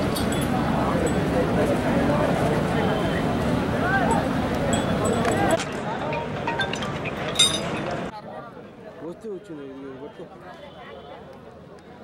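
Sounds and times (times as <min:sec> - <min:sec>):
outdoor background noise: 0:00.0 - 0:12.0
ringing metallic clink: 0:04.7 - 0:08.0.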